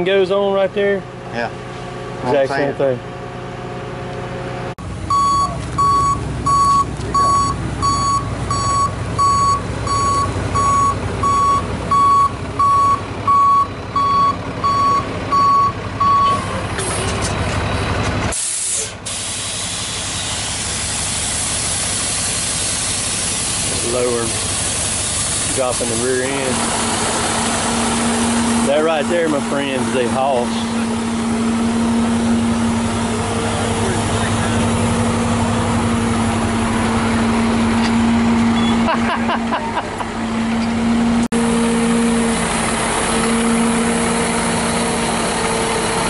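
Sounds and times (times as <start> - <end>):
truck engine running: 0.0 - 46.0
vehicle backup alarm beeping: 5.0 - 19.8, 37.6 - 39.1
hiss: 18.3 - 26.2.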